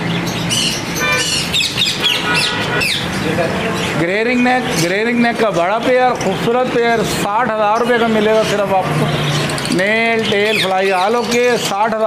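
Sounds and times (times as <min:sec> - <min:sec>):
caged birds chirping and squawking: 0:00.0 - 0:12.0
short horn-like tone: 0:01.0 - 0:01.3.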